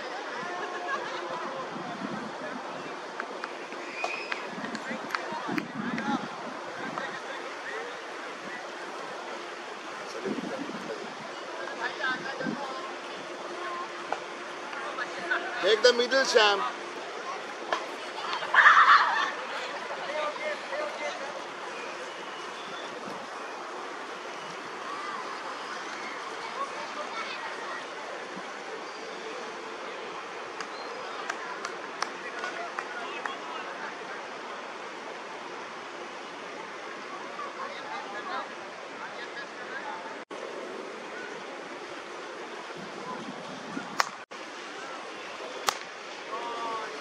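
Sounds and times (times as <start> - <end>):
steady outdoor hiss: 0.0 - 47.0.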